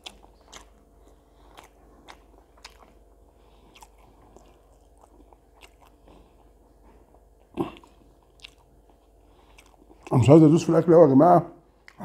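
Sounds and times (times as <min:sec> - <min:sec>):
person chewing food: 0:00.0 - 0:10.3, 0:11.7 - 0:12.0.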